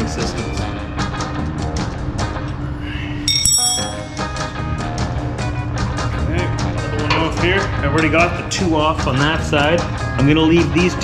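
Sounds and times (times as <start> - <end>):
wrench clinking on steel bolts: 3.3 - 4.4.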